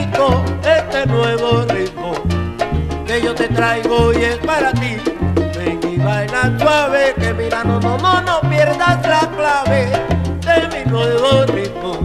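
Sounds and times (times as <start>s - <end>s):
bass line: 0.0s - 12.0s
pitched melody lines: 0.0s - 12.0s
rhythmic percussion: 0.0s - 12.0s.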